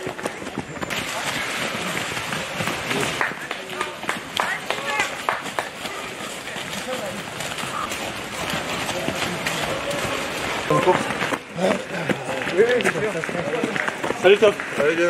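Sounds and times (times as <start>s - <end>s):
indistinct voices: 0.0s - 12.9s
runners' footsteps on fallen leaves: 0.0s - 15.0s.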